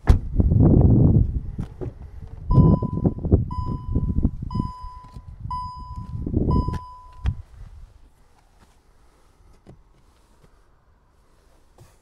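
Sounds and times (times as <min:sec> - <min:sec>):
high warning chime: 0:02.5 - 0:07.4.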